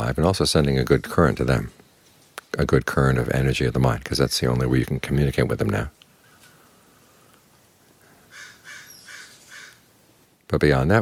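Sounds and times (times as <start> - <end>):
bird calling faintly: 7.9 - 10.0.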